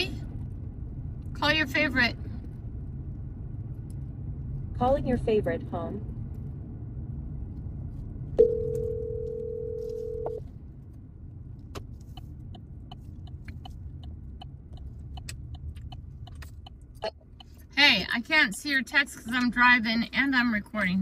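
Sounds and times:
car cabin road rumble: 0:00.0 - 0:21.0
phone ringback tone: 0:08.4 - 0:10.4
turn signal clicking: 0:11.5 - 0:19.8.

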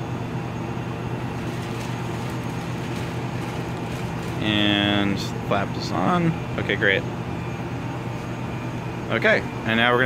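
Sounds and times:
fan humming with air rush: 0:00.0 - 0:10.0.

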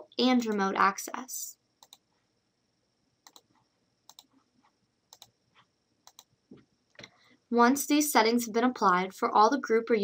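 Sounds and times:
computer mouse clicks: 0:01.8 - 0:02.1, 0:03.2 - 0:07.2.

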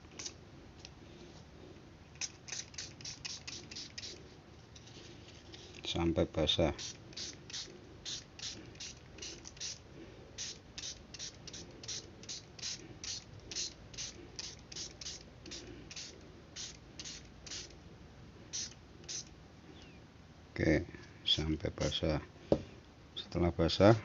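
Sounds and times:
spray bottle hissing sprays: 0:02.2 - 0:04.2, 0:06.8 - 0:09.8, 0:10.4 - 0:17.8, 0:18.5 - 0:19.3.

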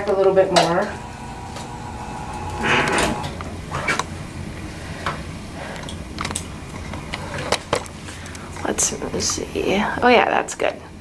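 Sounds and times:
chair motor humming: 0:00.4 - 0:04.0.

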